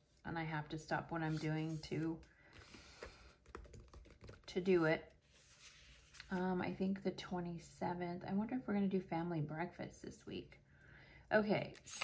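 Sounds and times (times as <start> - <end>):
paper pages rustling: 5.2 - 6.4.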